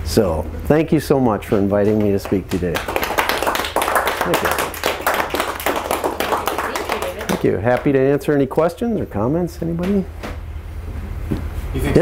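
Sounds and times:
audience applauding: 1.8 - 7.9.

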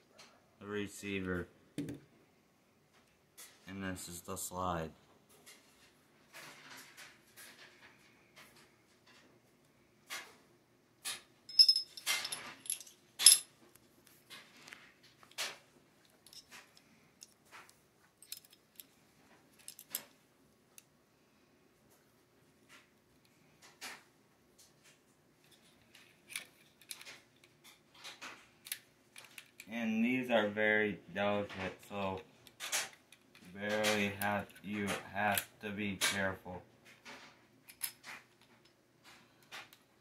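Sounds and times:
person speaking: 3.7 - 5.0, 29.7 - 32.3, 33.4 - 36.6
high metallic ring: 11.5 - 13.4
metallic clicks and scrapes: 24.6 - 29.7, 31.5 - 39.9
pistol parts clicking together: 26.0 - 29.7.

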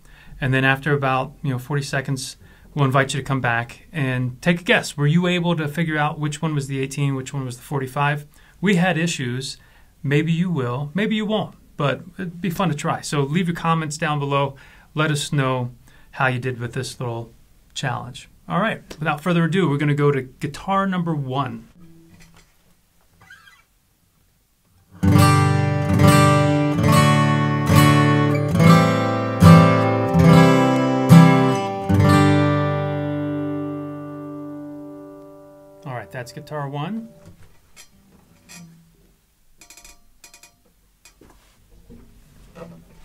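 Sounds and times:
guitar strings ringing faintly: 25.0 - 39.0.

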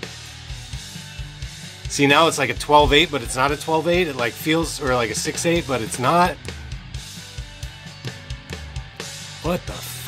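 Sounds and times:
drum kit playing: 0.0 - 10.0.

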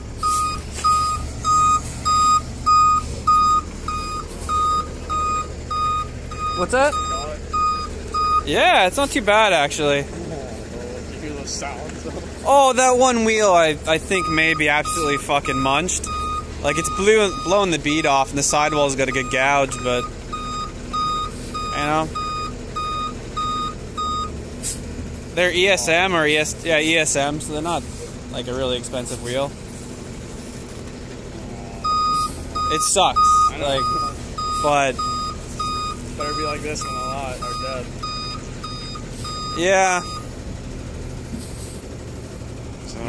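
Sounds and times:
backup alarm beeping: 0.0 - 8.6, 14.0 - 24.4, 31.8 - 40.3
truck engine running: 0.0 - 43.0
winch pulling car: 0.0 - 43.0.

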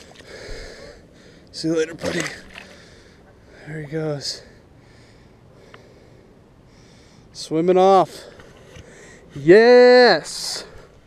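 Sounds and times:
man breathing: 0.0 - 1.5, 2.6 - 3.7, 4.4 - 7.4, 8.1 - 9.4.

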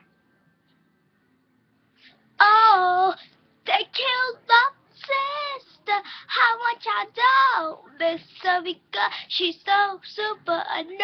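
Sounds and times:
girl singing unaccompanied: 2.4 - 11.0.

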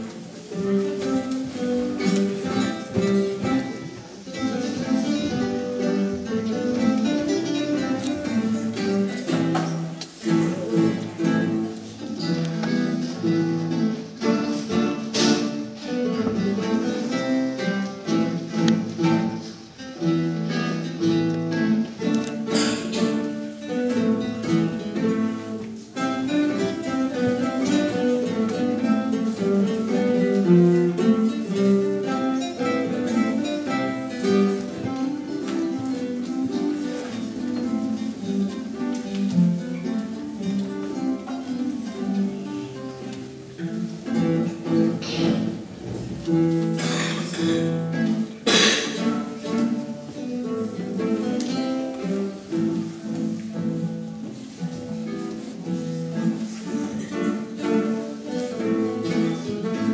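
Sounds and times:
classical guitar ensemble playing: 0.0 - 59.9.

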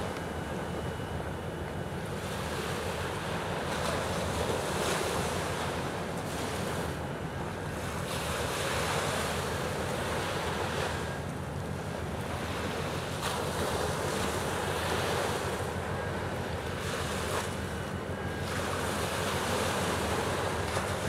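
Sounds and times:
sea water wash: 0.0 - 21.0.

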